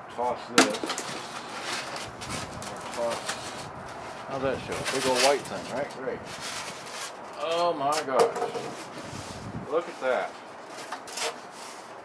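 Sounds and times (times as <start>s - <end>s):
styrofoam scraping cardboard: 1.1s - 7.2s, 8.6s - 12.0s.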